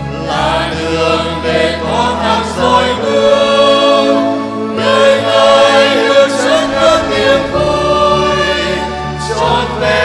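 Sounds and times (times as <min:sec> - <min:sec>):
choir singing a hymn: 0:00.0 - 0:10.0
low accompaniment: 0:00.5 - 0:10.0.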